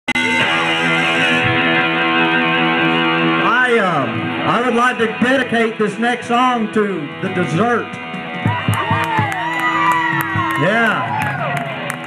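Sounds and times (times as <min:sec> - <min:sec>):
electric guitar chord ringing: 0:00.1 - 0:12.0
man talking: 0:03.4 - 0:08.0, 0:10.6 - 0:11.1.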